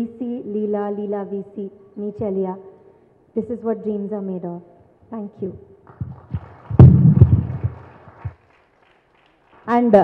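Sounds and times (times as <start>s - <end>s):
microphone handling thumps: 6.0s - 8.4s.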